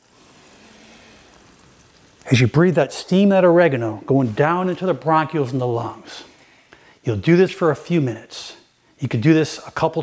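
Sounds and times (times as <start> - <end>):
man breathing in deeply: 6.3 - 7.0.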